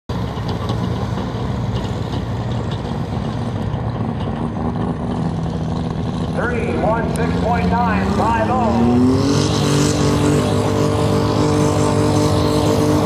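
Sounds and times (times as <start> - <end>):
tractor diesel engine under load: 0.1 - 13.0.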